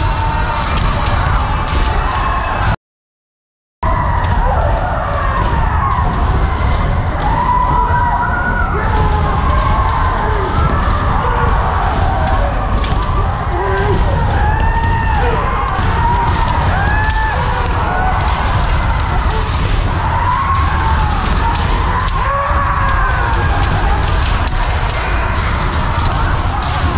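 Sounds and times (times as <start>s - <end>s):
people shouting drawn-out yells: 0.0s - 2.8s, 3.8s - 26.9s.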